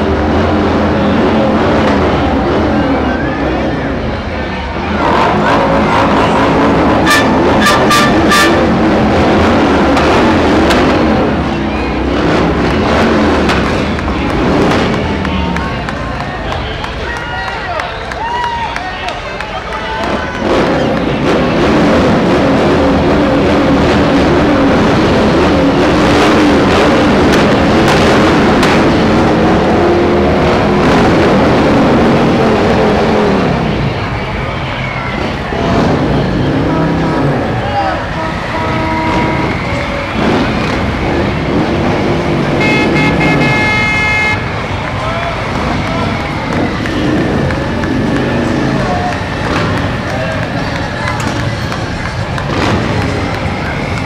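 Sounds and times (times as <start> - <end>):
truck engine passing: 0.0 - 18.2, 18.9 - 54.0
crowd voices: 0.0 - 54.0
motorcycles passing: 0.0 - 54.0
horn toot: 5.0 - 9.0, 38.0 - 39.9, 42.6 - 44.5.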